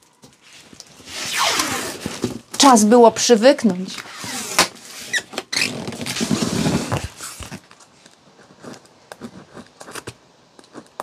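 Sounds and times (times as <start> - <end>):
packing tape tearing off roll: 0.8 - 2.6, 3.9 - 7.7.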